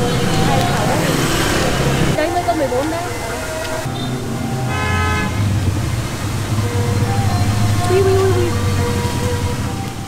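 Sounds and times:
street traffic hum: 0.0s - 10.0s
vehicle horn toot: 3.8s - 5.6s.

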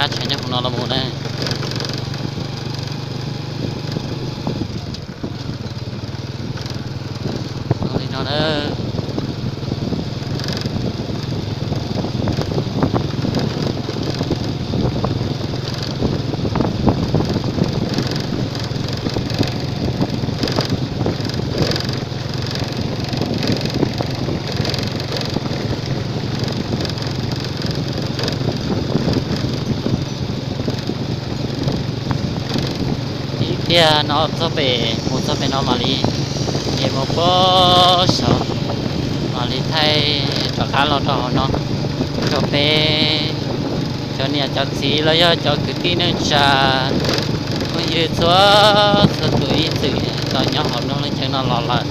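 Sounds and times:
vehicle engine and road noise: 0.0s - 51.9s.

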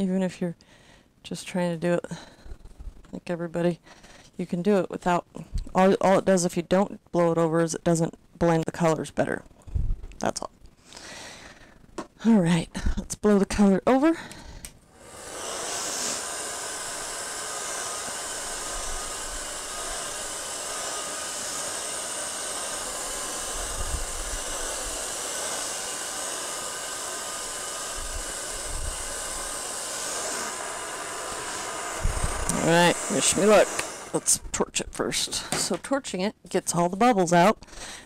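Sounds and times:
blow dryer airy hiss: 14.1s - 35.8s
dryer motor hum: 14.9s - 35.8s.

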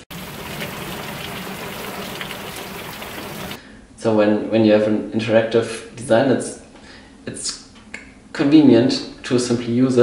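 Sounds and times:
rain on plastic barrel: 0.0s - 3.6s
rain on stone paving: 0.0s - 3.6s.

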